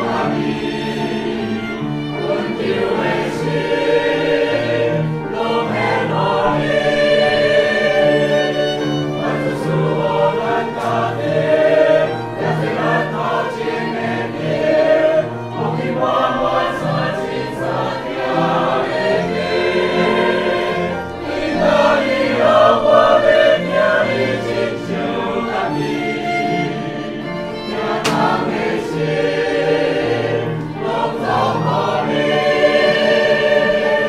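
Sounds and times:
choir singing a hymn: 0.0s - 34.0s
violin: 0.0s - 34.0s.

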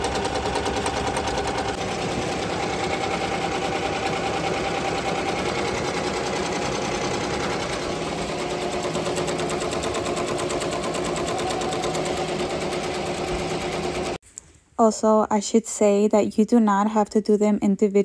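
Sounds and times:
embroidery machine rattling: 0.0s - 14.2s.

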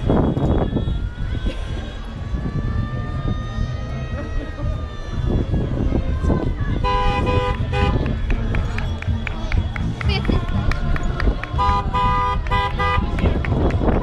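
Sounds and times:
crowd chatter: 0.0s - 14.0s
vehicle horn blasts: 6.8s - 8.0s, 11.6s - 13.2s.

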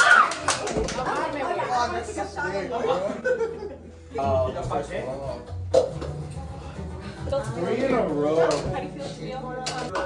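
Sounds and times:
background music with guitar and bass: 1.9s - 10.0s.

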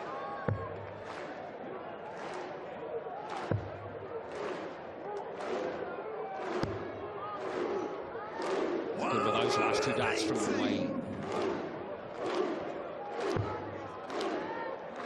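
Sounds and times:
arena crowd chatter and calls: 0.0s - 15.0s.

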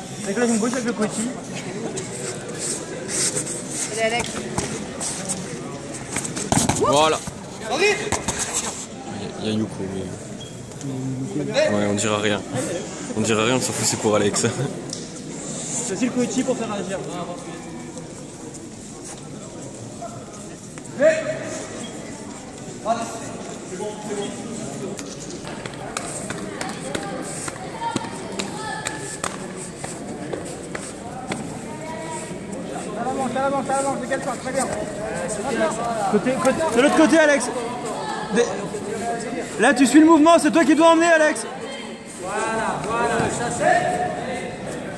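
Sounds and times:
indistinct voices in a gymnasium: 0.0s - 44.9s.

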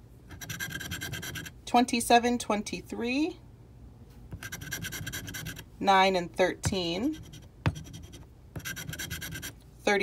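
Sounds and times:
lottery ticket being scratched: 0.3s - 1.6s, 4.3s - 5.7s, 6.7s - 9.6s.

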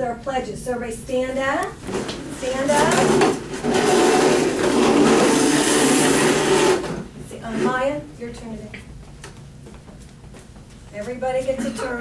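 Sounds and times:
chairs scraping on floor: 1.8s - 7.9s
feet shuffling on floor: 8.8s - 11.6s.

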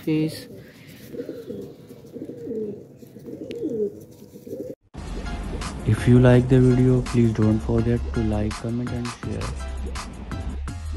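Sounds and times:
pigeons cooing: 0.0s - 4.8s.

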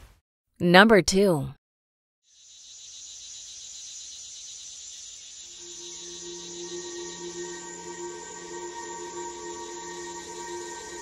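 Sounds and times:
high shimmering hiss: 2.3s - 11.0s
low drone of held notes: 5.6s - 11.0s.

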